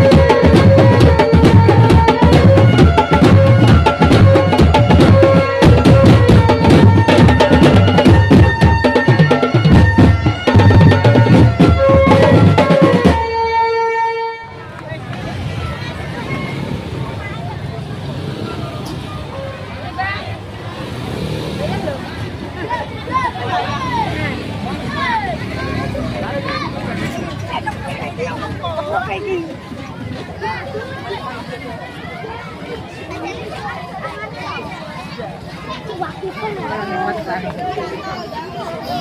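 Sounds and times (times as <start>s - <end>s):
marching drum band: 0.0s - 14.0s
street crowd chatter and shouting: 0.0s - 39.0s
children's voices: 14.4s - 39.0s.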